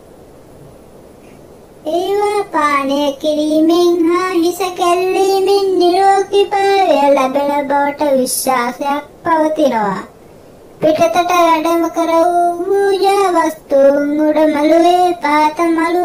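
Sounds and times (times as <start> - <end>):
high voice singing unaccompanied: 1.8 - 10.2, 10.8 - 16.0.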